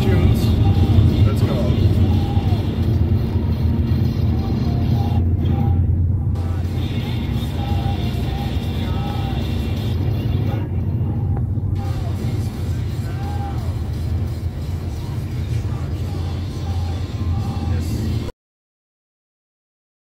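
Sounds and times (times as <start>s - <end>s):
road and engine rumble: 0.0s - 18.3s
song on car stereo: 0.0s - 18.3s.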